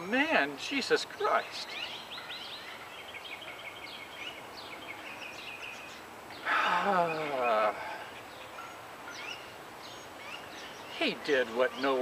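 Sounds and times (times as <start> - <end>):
bird high chirps: 1.1 - 12.0
man sighing: 6.4 - 8.2.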